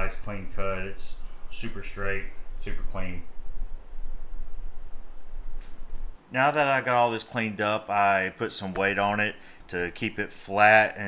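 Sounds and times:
low rumble: 0:00.0 - 0:06.2
faint hiss: 0:00.0 - 0:11.0.

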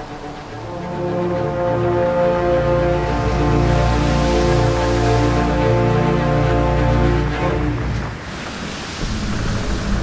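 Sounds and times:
low music: 0:00.0 - 0:10.0
rushing wind: 0:00.0 - 0:10.0
sea noise: 0:00.0 - 0:10.0.

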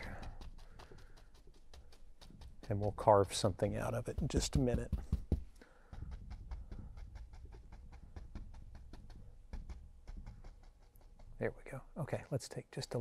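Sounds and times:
brush tapping on canvas: 0:00.0 - 0:12.0.

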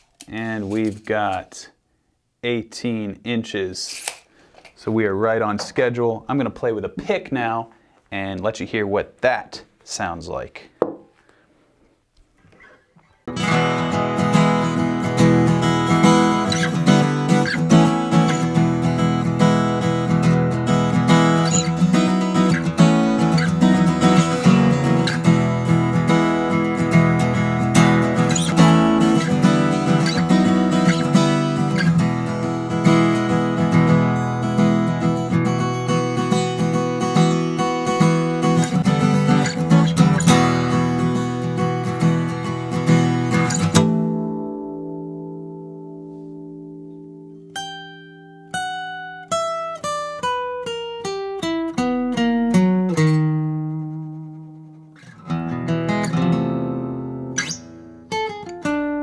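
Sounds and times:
acoustic guitar strummed and picked: 0:12.5 - 0:59.0.

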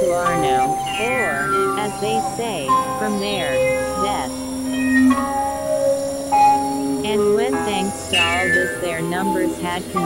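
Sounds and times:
synthesizer drone: 0:00.0 - 0:10.0.

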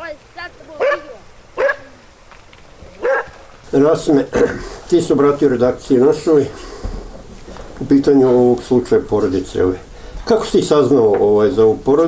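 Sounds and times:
dog barking: 0:00.8 - 0:02.0, 0:03.0 - 0:03.4
man talking: 0:03.7 - 0:06.8, 0:07.8 - 0:12.0.

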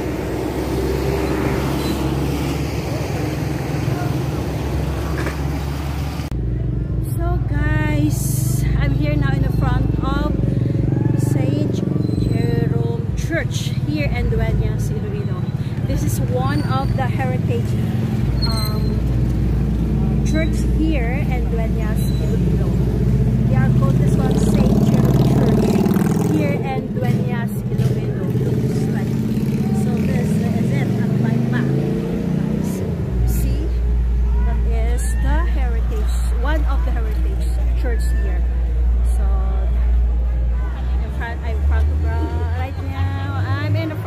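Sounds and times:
deeper rumble: 0:00.0 - 0:44.0
motorcycle engine running: 0:06.4 - 0:32.0
people's voices: 0:06.4 - 0:44.0.

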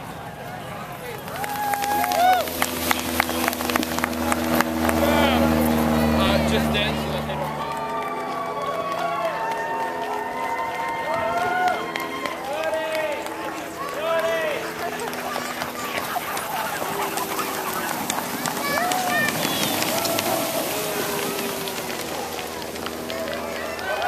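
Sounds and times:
spectators' voices: 0:00.0 - 0:24.0.

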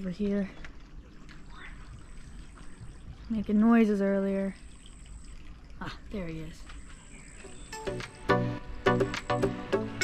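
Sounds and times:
water trickling into pond: 0:00.0 - 0:08.8.

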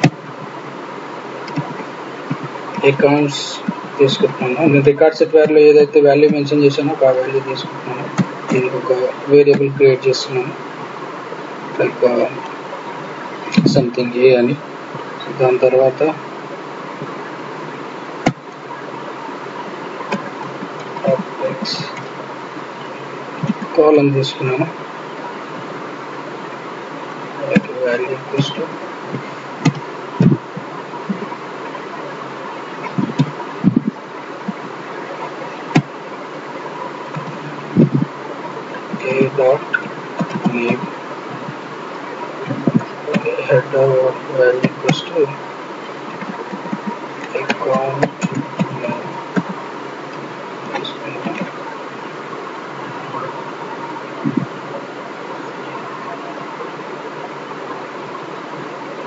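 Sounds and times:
steady buzzing: 0:00.0 - 0:59.0
person speaking: 0:01.5 - 0:10.6, 0:11.7 - 0:12.4, 0:13.4 - 0:14.6, 0:15.2 - 0:16.2, 0:20.0 - 0:22.1, 0:22.9 - 0:24.8, 0:27.4 - 0:30.5, 0:32.8 - 0:34.0, 0:37.0 - 0:41.6, 0:42.3 - 0:45.4, 0:46.2 - 0:49.5, 0:50.6 - 0:51.7
man murmuring: 0:02.8 - 0:10.5, 0:21.0 - 0:22.0, 0:39.0 - 0:39.7, 0:40.4 - 0:40.9, 0:42.5 - 0:45.4, 0:47.3 - 0:49.1.

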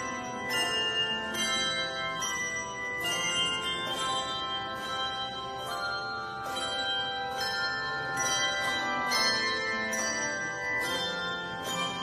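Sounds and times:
handbell choir ringing: 0:00.0 - 0:12.0.

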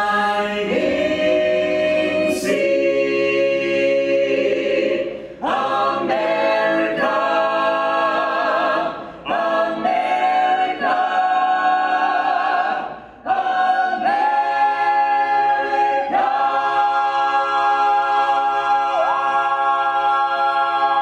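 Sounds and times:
mixed choir singing in harmony: 0:00.0 - 0:21.0.

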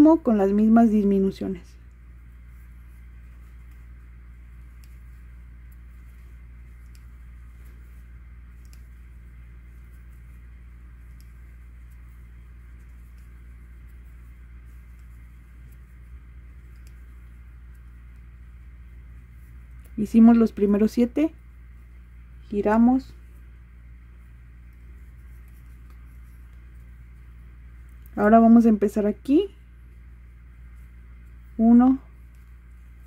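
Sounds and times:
low room hum: 0:00.0 - 0:33.0.

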